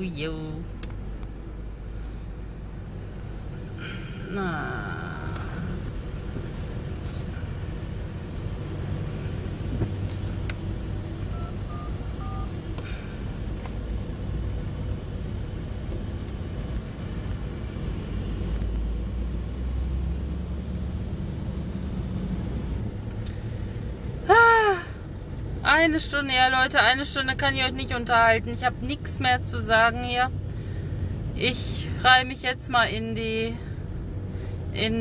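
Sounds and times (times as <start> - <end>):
low rumble inside car cabin: 0.0 - 35.0.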